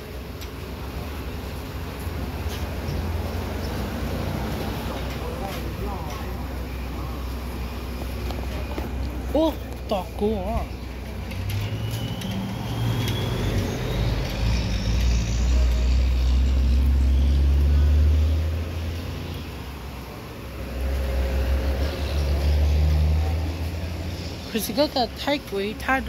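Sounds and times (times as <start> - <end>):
rumble of passing traffic: 0.0 - 26.0.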